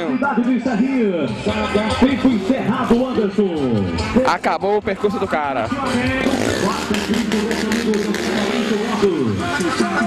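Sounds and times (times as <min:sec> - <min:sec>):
music: 0:00.0 - 0:10.0
announcer over loudspeaker: 0:06.2 - 0:09.4.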